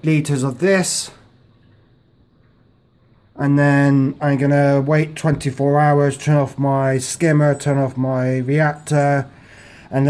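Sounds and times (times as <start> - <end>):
person speaking: 0.0 - 1.3, 3.4 - 10.0.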